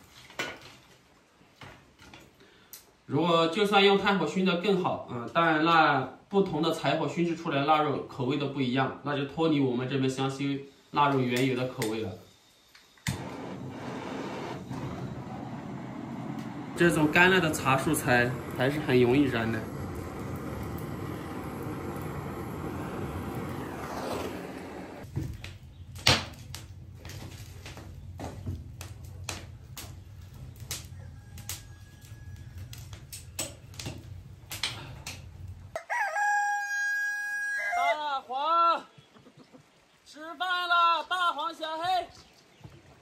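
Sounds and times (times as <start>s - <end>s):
fire crackling and popping: 11.1s - 35.8s
butane torch hissing: 13.0s - 25.1s
rooster crowing: 30.8s - 33.0s, 35.7s - 38.0s.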